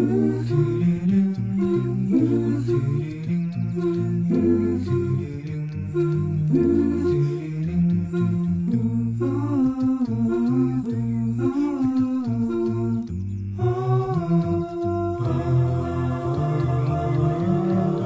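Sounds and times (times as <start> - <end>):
voices singing in harmony: 0.0 - 18.0.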